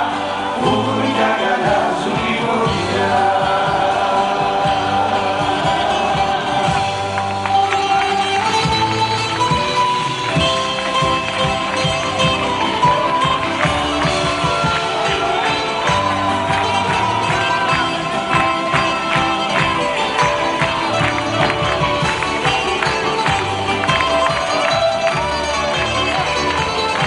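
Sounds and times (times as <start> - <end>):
live band music: 0.0 - 27.0.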